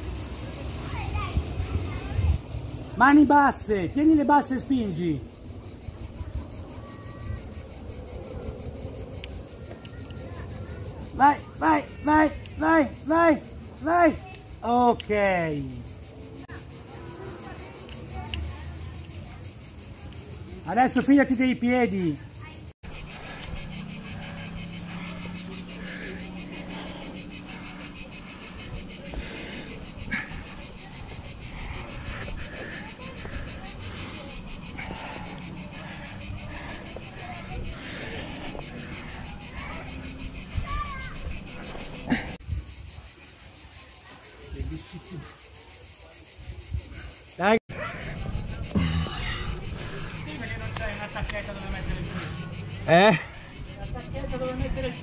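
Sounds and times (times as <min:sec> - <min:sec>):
insects chirring: 0:00.0 - 0:55.0.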